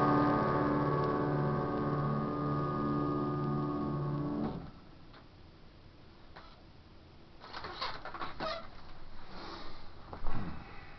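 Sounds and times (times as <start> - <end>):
clicks and creaks: 7.4 - 9.0
rustling: 7.4 - 10.6.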